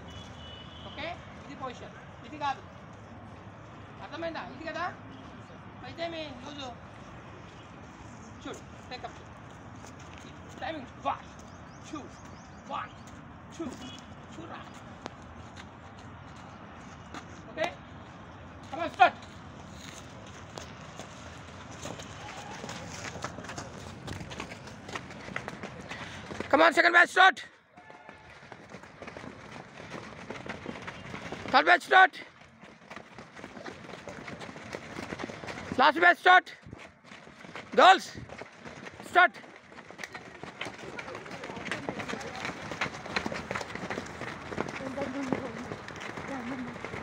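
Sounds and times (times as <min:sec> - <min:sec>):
running footsteps on dirt: 0:06.3 - 0:47.0.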